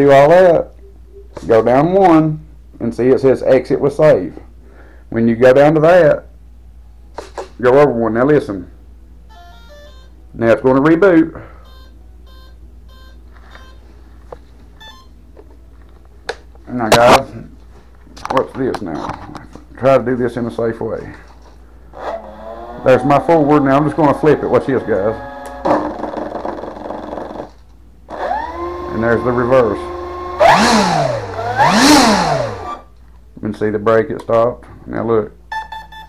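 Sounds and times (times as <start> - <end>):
short electronic beeps: 9.3 - 10.2, 11.6 - 13.9, 14.8 - 15.2, 35.5 - 36.0
electric motor and propeller whine: 21.9 - 25.9, 28.1 - 32.9.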